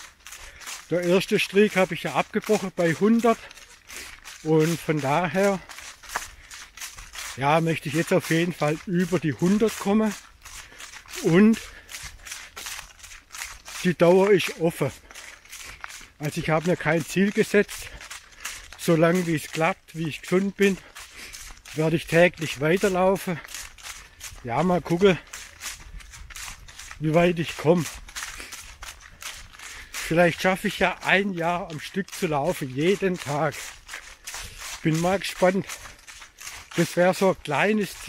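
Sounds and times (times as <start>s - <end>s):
runner breathing: 0.0s - 38.0s
running footsteps on snowy leaves: 0.0s - 38.0s.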